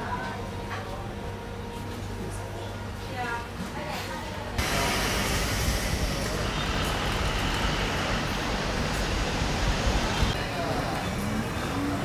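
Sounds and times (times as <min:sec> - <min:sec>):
street bustle: 0:00.0 - 0:12.0
road traffic: 0:04.6 - 0:12.0.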